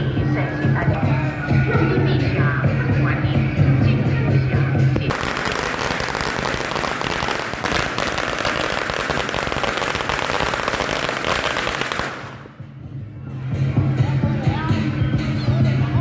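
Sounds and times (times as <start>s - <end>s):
music: 0.0s - 16.0s
firecrackers popping: 5.0s - 12.7s.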